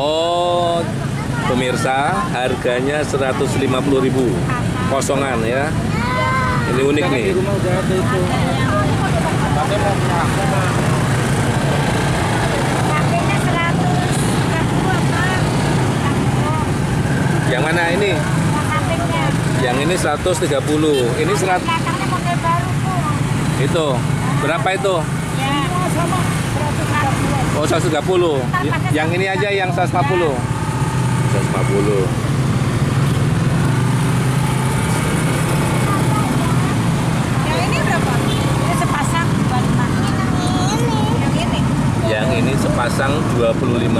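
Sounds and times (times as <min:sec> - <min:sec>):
faint voices talking: 0:00.0 - 0:43.9
low rumble of traffic: 0:00.0 - 0:43.9
roadside background noise: 0:00.0 - 0:43.9
vehicle engine idling: 0:00.0 - 0:43.9.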